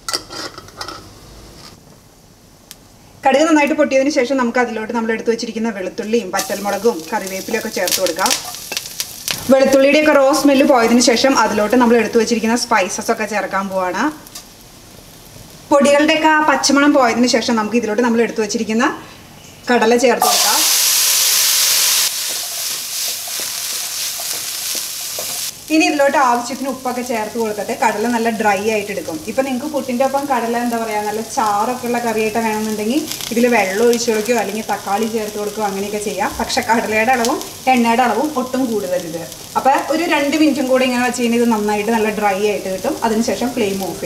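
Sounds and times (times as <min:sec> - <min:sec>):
woman talking: 0:03.2 - 0:08.4, 0:09.5 - 0:14.2, 0:15.7 - 0:19.0, 0:19.7 - 0:20.7, 0:25.7 - 0:44.0
chickpeas sizzling in oil: 0:06.2 - 0:17.6, 0:20.2 - 0:44.0
wooden spatula knocking and scraping pan: 0:22.2 - 0:25.5.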